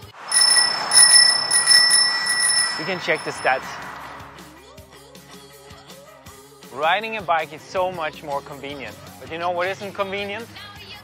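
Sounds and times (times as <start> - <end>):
bicycle bell ringing: 0.0 - 4.4.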